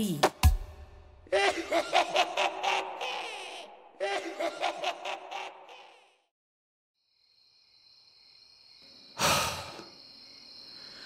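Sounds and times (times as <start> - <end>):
crickets chirring: 7.0 - 11.0
loud breathy sigh: 9.2 - 9.9.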